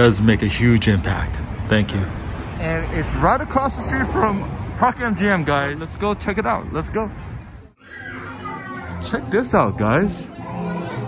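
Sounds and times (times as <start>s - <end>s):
background voices and chatter: 0.0s - 11.0s
higher-pitched voices: 7.8s - 11.0s.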